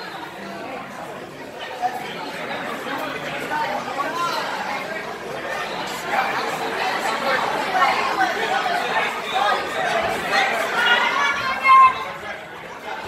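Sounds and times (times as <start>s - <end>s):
indistinct chatter: 0.0s - 13.0s.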